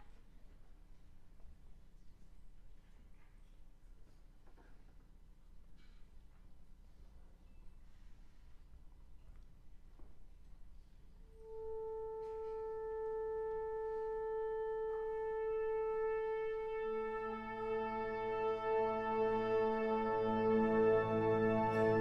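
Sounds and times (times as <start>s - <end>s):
wind ensemble holding a note: 11.2s - 22.0s.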